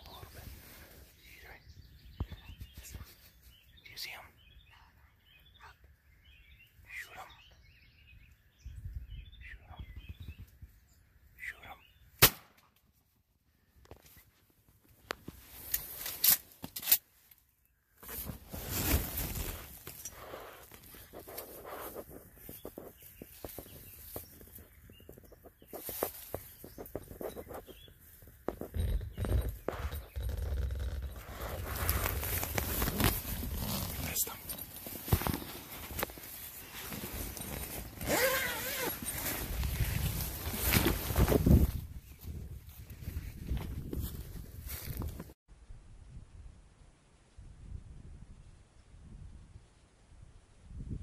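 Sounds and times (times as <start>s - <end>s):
faint bird chirps: 0.0s - 12.2s, 19.2s - 39.1s.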